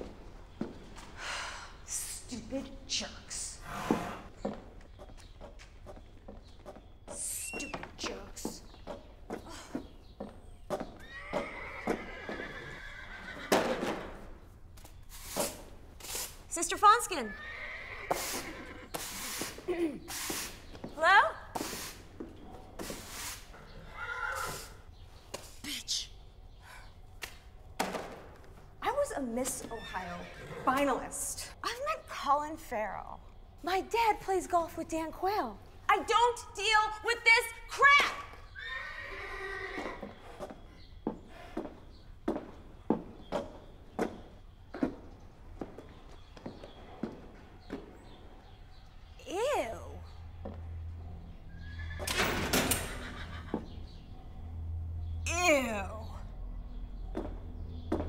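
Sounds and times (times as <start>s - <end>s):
horse whinnying: 11.0s - 14.2s, 17.1s - 19.4s, 23.5s - 24.9s, 29.6s - 31.0s, 38.5s - 40.4s, 51.5s - 53.7s.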